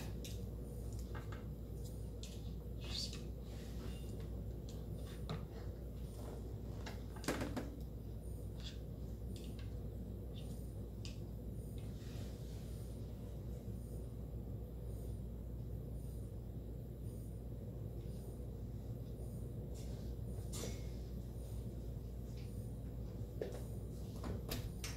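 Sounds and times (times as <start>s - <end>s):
low room hum: 0.0s - 24.9s.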